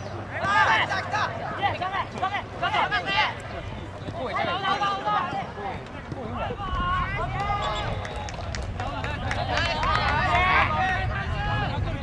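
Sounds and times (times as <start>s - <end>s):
voices shouting calls: 0.0s - 11.9s.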